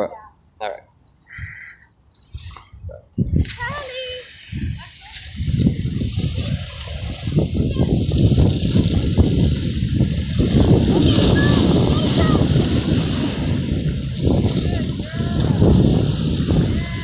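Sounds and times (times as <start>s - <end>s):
wind rumbling on microphone: 1.3s - 17.0s.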